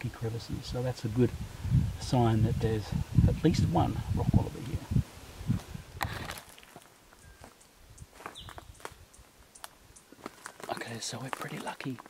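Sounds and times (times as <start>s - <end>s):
footsteps on dry leaves: 5.5s - 9.0s, 9.6s - 12.0s.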